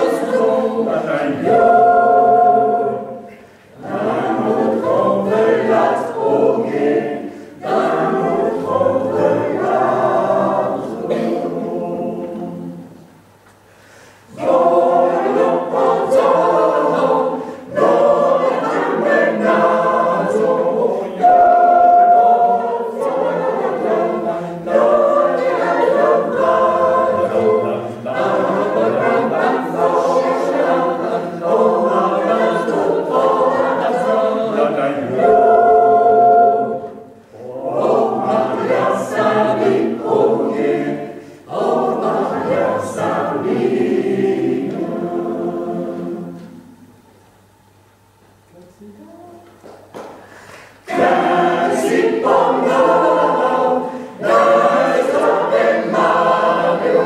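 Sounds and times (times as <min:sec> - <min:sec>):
mixed choir singing unaccompanied: 0:00.0 - 0:13.1, 0:14.3 - 0:47.0, 0:50.3 - 0:57.0.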